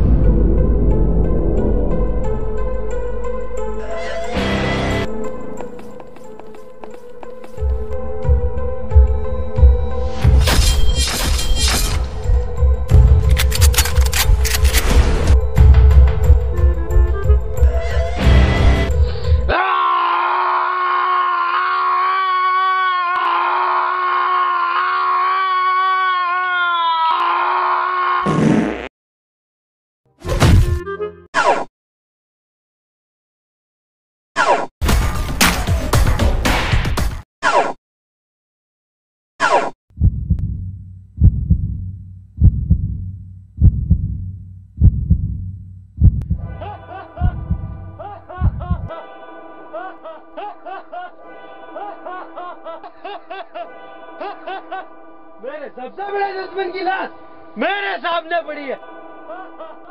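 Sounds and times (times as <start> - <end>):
long high scream: 19.5 - 28.3
heartbeat thumps: 39.9 - 46.6, 47.2 - 48.9.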